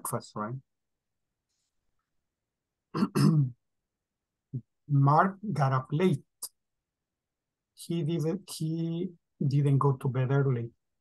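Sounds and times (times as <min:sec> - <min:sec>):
person clearing throat: 0:02.9 - 0:03.6.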